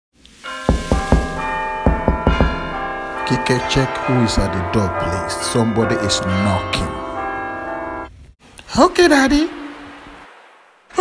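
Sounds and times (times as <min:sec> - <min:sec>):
ringing bell-like tones: 0:00.4 - 0:08.1
knocking on door: 0:00.7 - 0:03.0.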